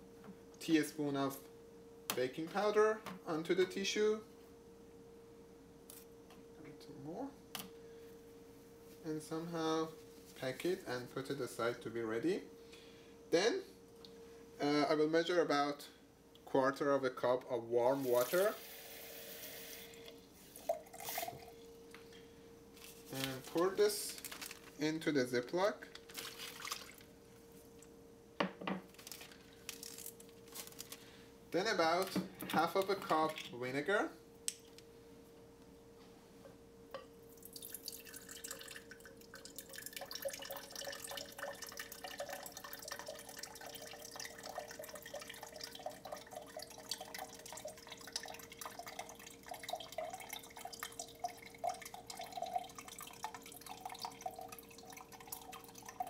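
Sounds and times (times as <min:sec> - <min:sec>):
liquid pouring into a glass: 0:18.0 - 0:21.6, 0:26.1 - 0:27.1, 0:37.3 - 0:56.0
water dripping: 0:26.0 - 0:27.1, 0:37.0 - 0:56.0.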